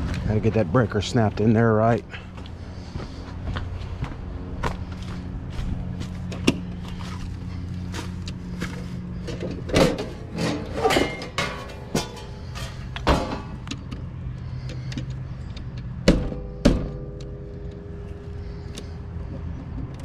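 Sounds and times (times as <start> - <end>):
steady low hum: 0.0 - 20.0
sharp metal clanks: 9.7 - 13.9
metallic knocks on metal box: 16.0 - 17.2.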